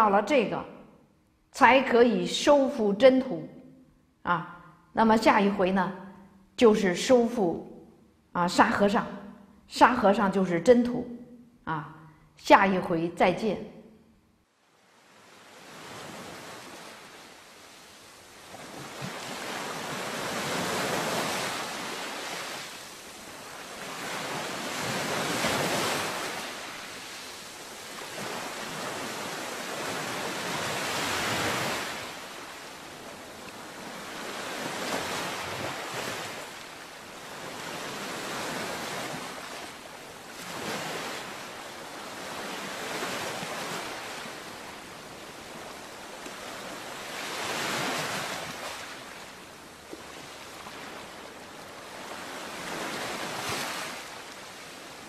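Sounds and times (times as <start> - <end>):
ocean waves washing in: 14.6 - 55.0.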